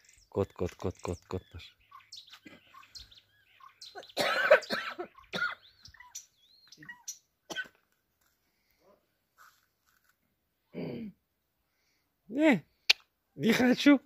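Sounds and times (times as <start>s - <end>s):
small bird chirps: 0.0s - 7.4s
person coughing: 4.1s - 5.6s, 7.5s - 7.8s, 10.7s - 11.2s.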